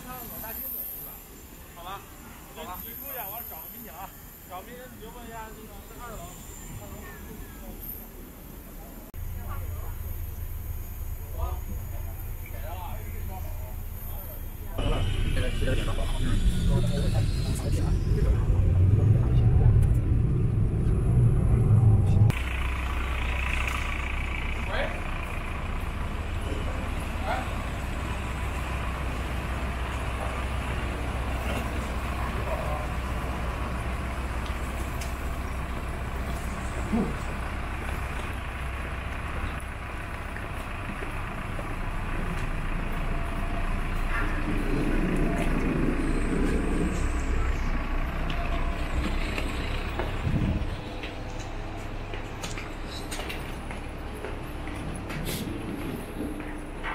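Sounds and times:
bus engine rumble: 0.0 - 56.9.

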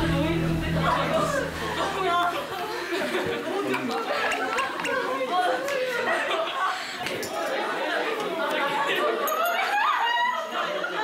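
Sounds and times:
girls chattering: 0.0 - 11.0.

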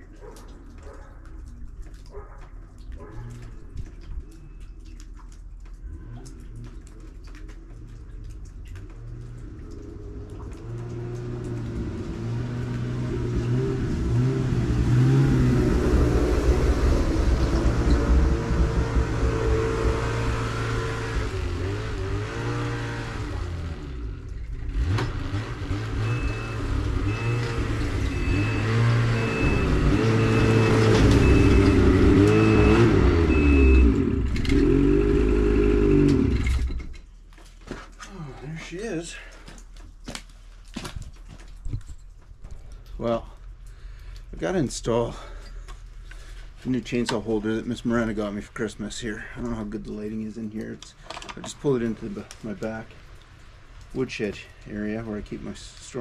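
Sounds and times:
reverse warning beeper: 26.0 - 34.0.

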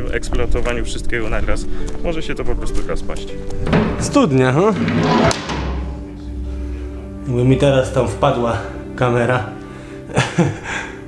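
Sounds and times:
background music: 0.0 - 11.0
metal hatch clanking: 3.5 - 6.4.

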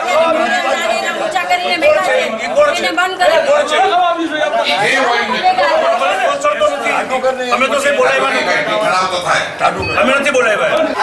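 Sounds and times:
men talking and shouting: 0.0 - 11.0.

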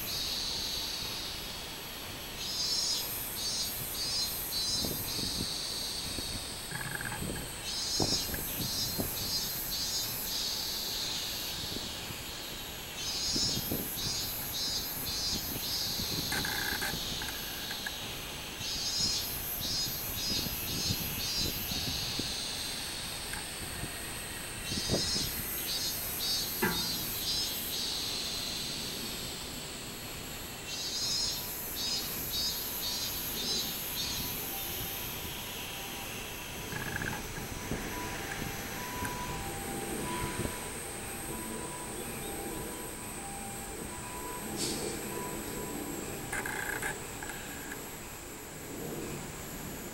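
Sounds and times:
cicadas singing pulsed notes: 0.0 - 49.9
steady high whine: 0.0 - 49.9.

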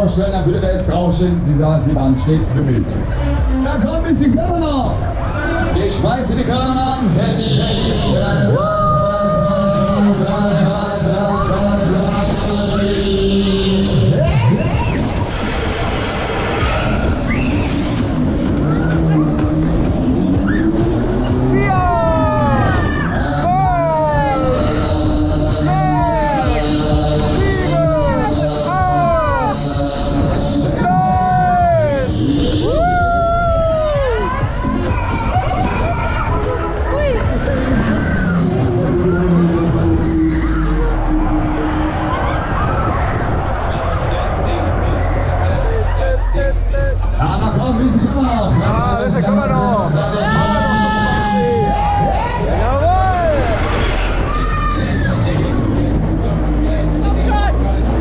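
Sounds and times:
loud ride music: 0.0 - 58.0
riders whooping: 7.6 - 13.2, 14.0 - 46.8, 50.2 - 57.4
wind rush on microphone: 41.0 - 46.0.

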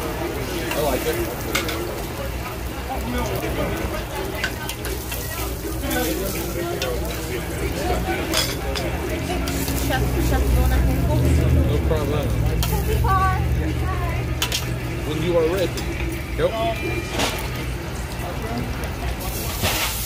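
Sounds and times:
meat sizzling on grill: 0.0 - 20.0
voices chattering: 0.0 - 20.0.

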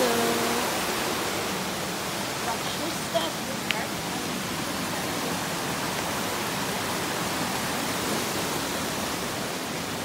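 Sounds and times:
water rushing over rocks: 0.0 - 10.0.

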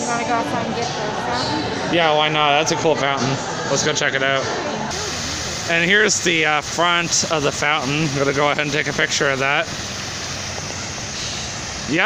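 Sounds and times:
fountain water splashing into basin: 4.9 - 12.0.

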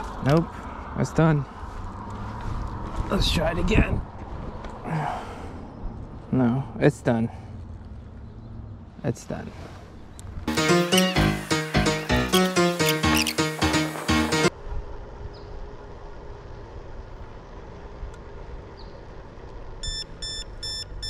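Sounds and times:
backing music: 10.5 - 14.5.

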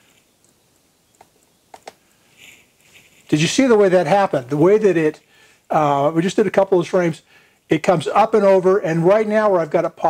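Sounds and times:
faint clicks: 0.0 - 3.4
soft breath-like hiss: 1.9 - 3.4, 5.2 - 5.8, 7.2 - 7.7.

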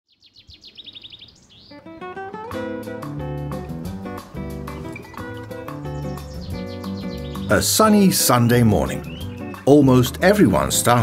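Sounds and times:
songbird singing: 0.1 - 2.4, 3.3 - 11.0
acoustic guitar music: 1.7 - 11.0.

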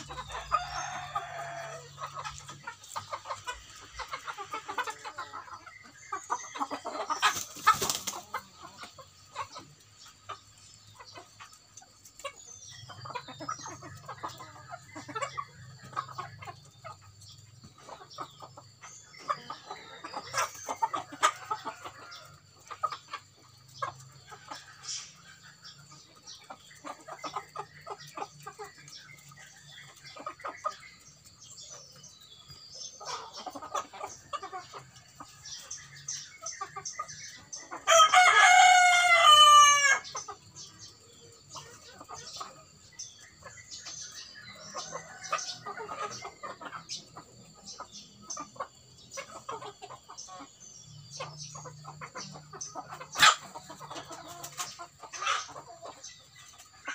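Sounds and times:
chickens clucking softly: 0.0 - 56.9
chickens pecking grain: 0.0 - 56.9
rooster crowing: 37.9 - 40.0.

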